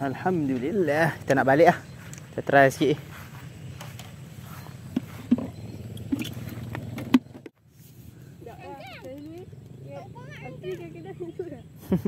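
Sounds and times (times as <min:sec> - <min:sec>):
motorcycle engine idling: 0:00.0 - 0:07.5
light engine knocks: 0:04.9 - 0:07.6.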